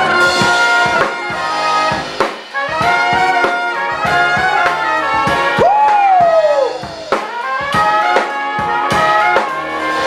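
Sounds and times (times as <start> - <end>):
brass band playing: 0.0 - 10.0
drum strokes: 0.0 - 10.0.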